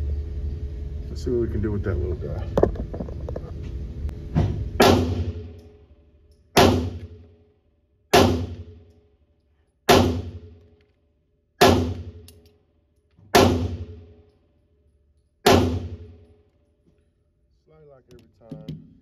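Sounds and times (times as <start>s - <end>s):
gunshot echo off walls: 4.8s - 5.6s, 6.6s - 7.2s, 8.1s - 8.8s, 9.9s - 10.6s, 11.6s - 12.2s, 13.3s - 14.2s, 15.4s - 16.2s
pistol shots: 4.8s - 5.6s, 6.6s - 7.2s, 8.1s - 8.8s, 9.9s - 10.5s, 11.6s - 12.3s, 13.3s - 14.0s, 15.4s - 16.2s.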